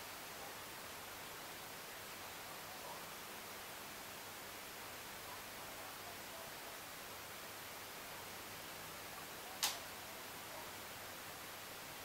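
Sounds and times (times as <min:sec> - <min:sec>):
faint steady hiss: 0:00.0 - 0:12.0
short sharp click: 0:09.6 - 0:09.8.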